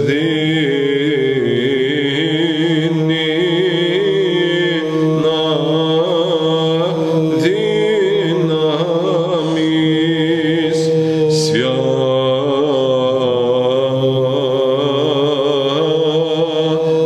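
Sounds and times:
held vocal drone: 0.0s - 17.0s
men chanting melody: 0.0s - 17.0s.

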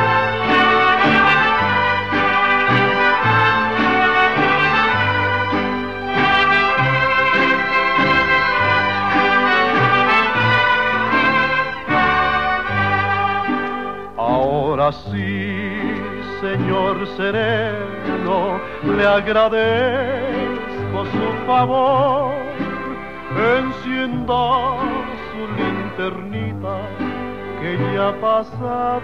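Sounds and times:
trumpets playing melody: 0.0s - 14.2s.

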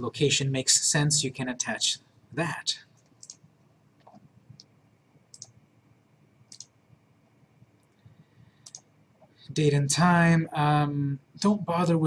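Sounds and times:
computer mouse clicks: 3.0s - 4.7s, 5.3s - 5.6s, 6.5s - 6.7s, 7.8s - 9.4s.

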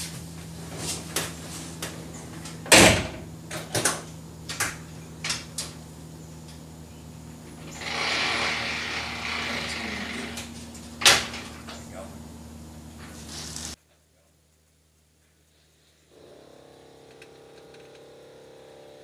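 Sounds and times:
steady whirring hiss: 0.0s - 19.0s.

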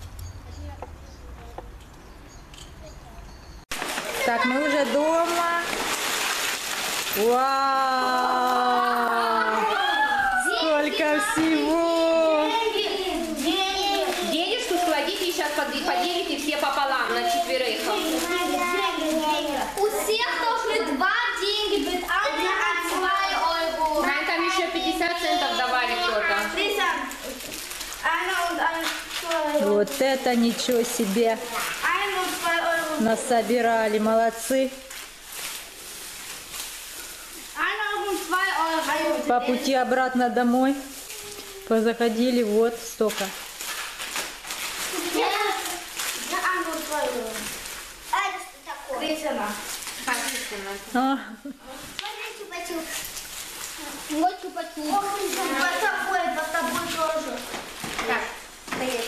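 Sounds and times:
children talking: 0.0s - 5.9s, 7.1s - 34.0s, 37.4s - 42.4s, 44.8s - 59.0s
plastic wrappers crinkling: 3.7s - 59.0s.

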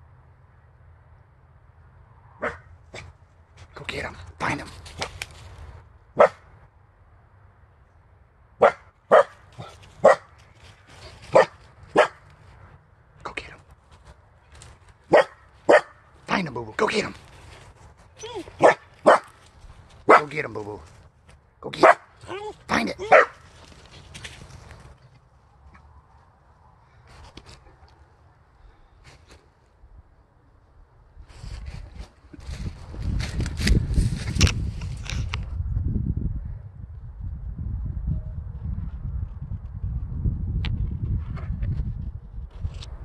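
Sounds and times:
dog barking: 2.4s - 3.1s, 6.2s - 6.5s, 8.6s - 10.3s, 11.3s - 12.2s, 15.1s - 16.0s, 18.4s - 19.4s, 20.1s - 20.3s, 21.8s - 22.1s, 23.0s - 23.4s
rustling in dry grass: 4.5s - 5.9s, 9.3s - 12.8s, 13.6s - 21.4s, 22.1s - 30.0s, 31.2s - 35.5s
dog yelping: 21.8s - 23.4s.

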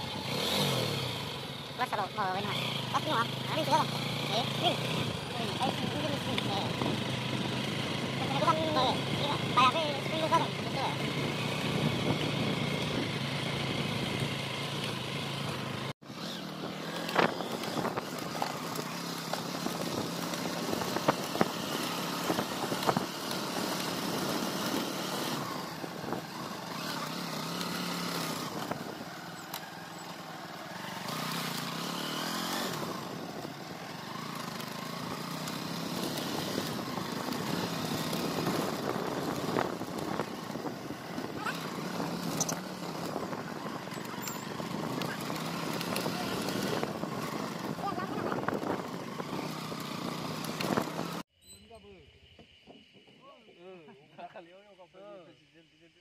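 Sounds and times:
small motorbike engine: 0.0s - 53.2s.

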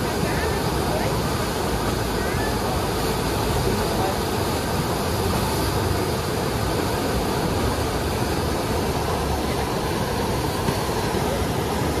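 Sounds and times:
river wave rushing: 0.0s - 12.0s.

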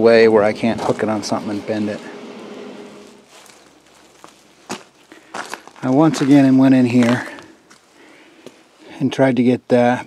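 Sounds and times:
footsteps on gravel: 3.0s - 8.6s.

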